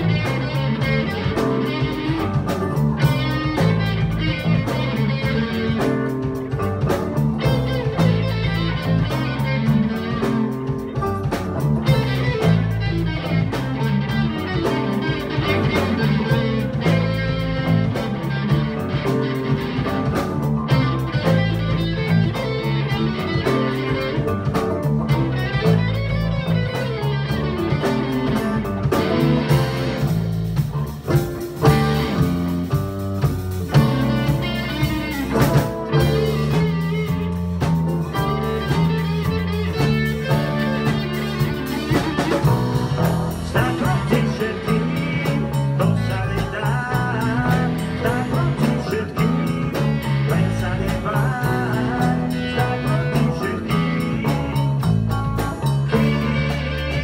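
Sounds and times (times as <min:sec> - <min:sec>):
acoustic guitar: 0:00.0 - 0:57.0
bass guitar: 0:00.0 - 0:57.0
drums: 0:00.0 - 0:57.0
electric guitar: 0:00.0 - 0:57.0.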